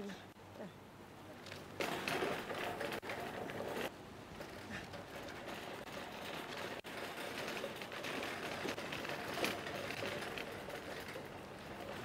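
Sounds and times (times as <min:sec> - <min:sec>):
shopping trolley rattling: 0:01.7 - 0:12.0.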